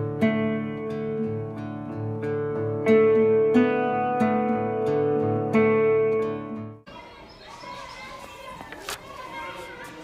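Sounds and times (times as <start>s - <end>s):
children chattering: 6.8s - 10.0s.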